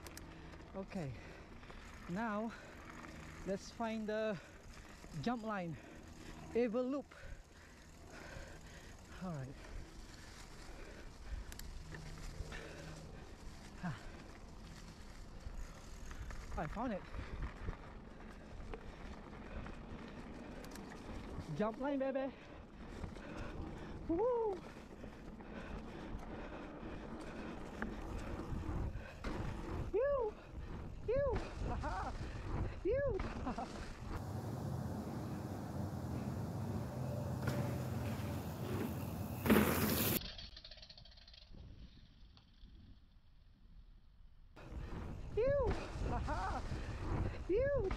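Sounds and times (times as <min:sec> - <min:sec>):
tyres rolling on dirt trail: 0:00.0 - 0:40.2, 0:44.6 - 0:47.9
bike clicks and rattles: 0:00.0 - 0:43.8, 0:44.6 - 0:47.9
tyre rumble on dirt trail: 0:30.6 - 0:40.2.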